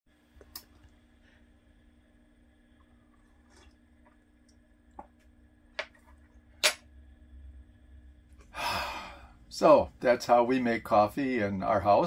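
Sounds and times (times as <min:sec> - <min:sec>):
man sighing: 0:08.5 - 0:09.4.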